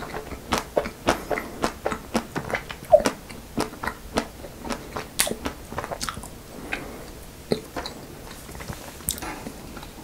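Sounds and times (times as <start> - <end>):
wet mouth clicks and smacks: 0.0 - 9.9
chewing and biting ice cream bar: 0.0 - 10.0.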